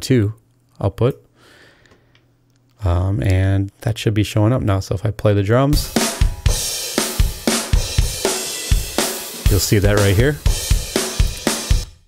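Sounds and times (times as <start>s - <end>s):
drum kit steady beat: 5.7s - 12.0s.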